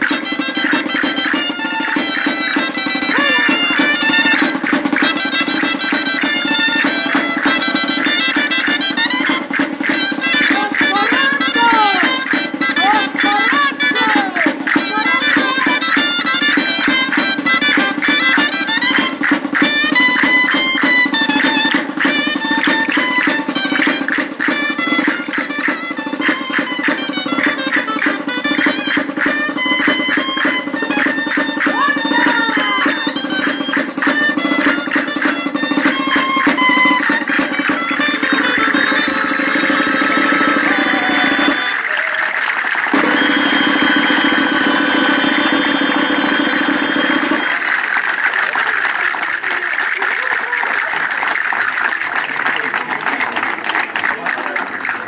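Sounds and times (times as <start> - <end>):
folk shawms playing dance tune: 0.0 - 55.0
voices: 1.2 - 19.2, 29.5 - 55.0.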